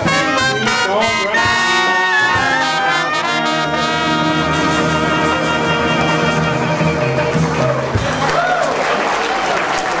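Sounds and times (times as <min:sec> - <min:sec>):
band chord: 0:00.0 - 0:08.2
audience applauding and cheering: 0:01.6 - 0:10.0.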